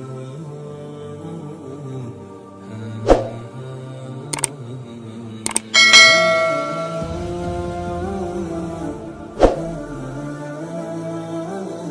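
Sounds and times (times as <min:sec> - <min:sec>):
background music: 0:00.0 - 0:11.9
mouse double click: 0:04.3 - 0:04.6, 0:05.5 - 0:05.7
notification bell chime: 0:05.8 - 0:07.4.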